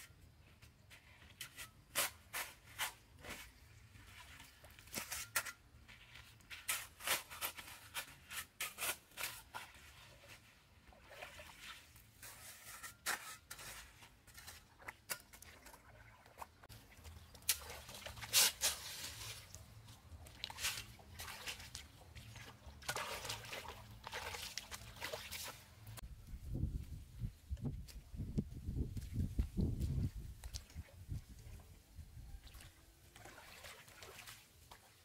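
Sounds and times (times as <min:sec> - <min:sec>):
shovel scraping through wet mud: 0:00.8 - 0:26.0.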